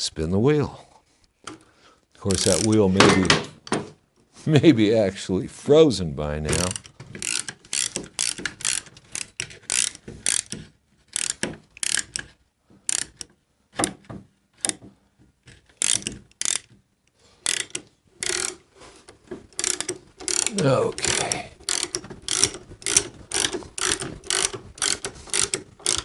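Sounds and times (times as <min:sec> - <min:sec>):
lift jack ratcheting clicks: 0:02.2 - 0:02.9, 0:06.5 - 0:14.0, 0:15.5 - 0:16.8, 0:17.4 - 0:26.0.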